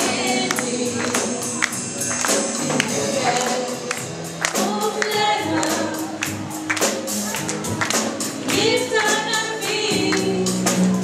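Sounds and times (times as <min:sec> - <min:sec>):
drum kit steady beat: 0:00.0 - 0:11.0.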